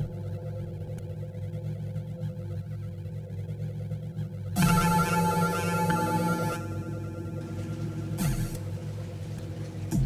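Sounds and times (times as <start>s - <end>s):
low electronic hum drone: 0.0s - 10.0s
steady higher tones: 0.0s - 10.0s.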